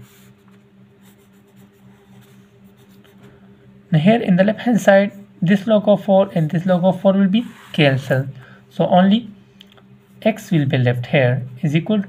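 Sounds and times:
steady low hum: 0:00.0 - 0:12.0
pen scratching on paper: 0:01.0 - 0:03.1.

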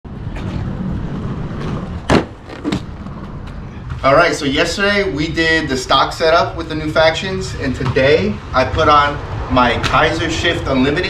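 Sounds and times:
skate wheels rolling on asphalt: 0:00.1 - 0:04.2
sharp knocks: 0:02.1 - 0:03.0.

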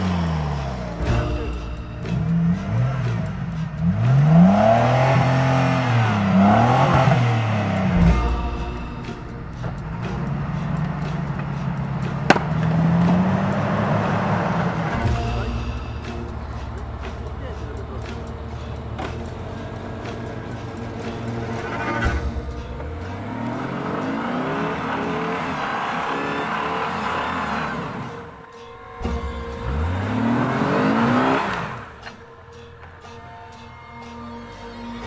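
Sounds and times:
car engine idling and revving: 0:00.0 - 0:35.0
tyres spinning in mud: 0:16.2 - 0:28.2.

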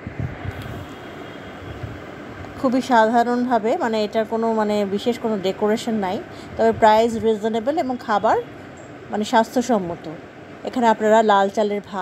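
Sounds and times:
low indoor rumble: 0:00.0 - 0:12.0.

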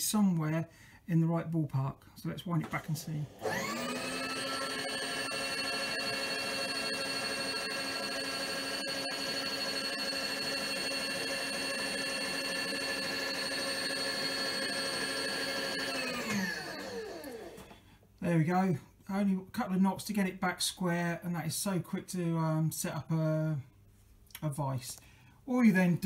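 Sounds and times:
power feed motor whining: 0:02.8 - 0:17.8.

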